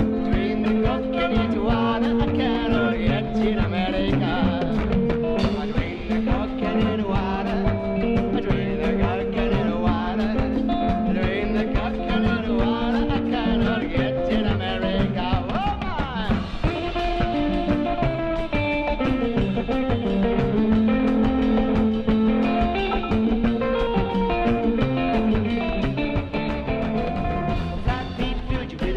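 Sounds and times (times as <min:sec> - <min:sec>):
congas: 0:00.0 - 0:28.9
drum kit: 0:00.0 - 0:28.9
electric guitar melody: 0:00.0 - 0:28.9
upright bass: 0:00.0 - 0:28.9.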